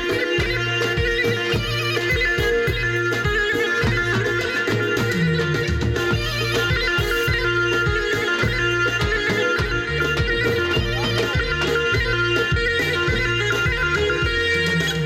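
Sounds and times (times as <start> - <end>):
folk dance music with drone: 0.0 - 15.0.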